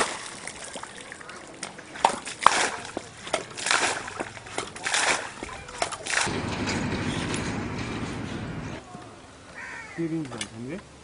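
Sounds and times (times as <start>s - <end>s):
water pump rattling and splashing: 0.0s - 8.8s.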